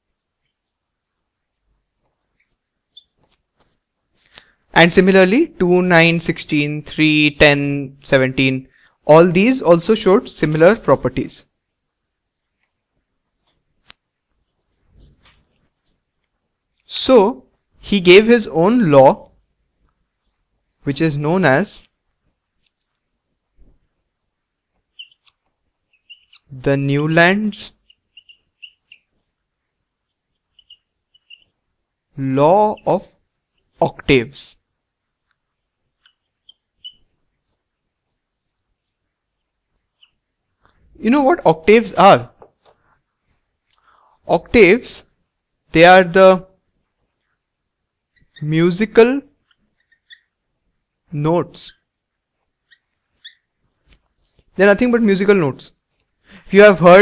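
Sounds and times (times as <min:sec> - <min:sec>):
marker squeaking on whiteboard: 0:00.2 - 0:03.9, 0:12.3 - 0:18.4, 0:23.6 - 0:34.6, 0:35.2 - 0:43.1, 0:47.0 - 0:50.6, 0:51.7 - 0:55.0.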